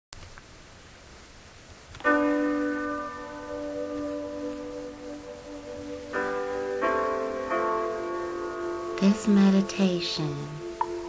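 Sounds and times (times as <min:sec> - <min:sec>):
ringing music chord: 0:02.1 - 0:11.0.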